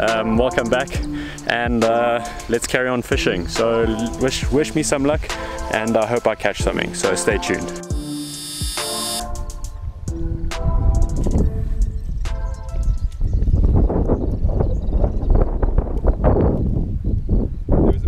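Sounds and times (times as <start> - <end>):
wind buffeting microphone: 9.7 - 18.0.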